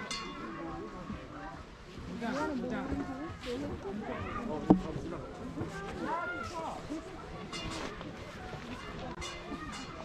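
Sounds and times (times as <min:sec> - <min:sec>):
faint voices: 0:00.0 - 0:10.0
footsteps on woven mat: 0:01.9 - 0:09.1.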